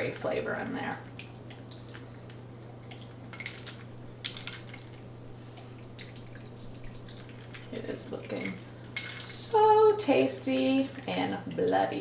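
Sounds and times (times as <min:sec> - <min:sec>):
steady low hum: 0:00.0 - 0:12.0
liquid dripping through strainer: 0:01.1 - 0:12.0.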